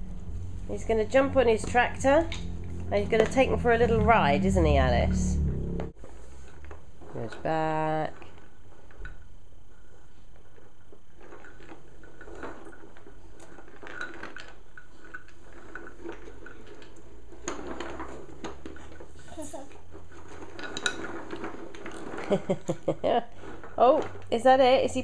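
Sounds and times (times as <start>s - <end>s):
toy wheels rolling on floorboards: 0.0s - 25.0s.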